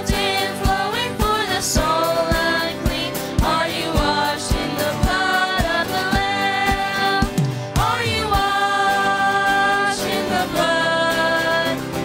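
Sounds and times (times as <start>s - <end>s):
band accompanying: 0.0s - 12.0s
women singing worship music: 0.0s - 12.0s.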